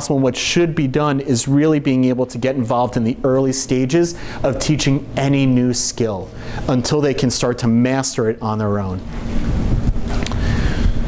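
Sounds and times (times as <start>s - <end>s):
rushing rumble on microphone: 9.2s - 11.0s.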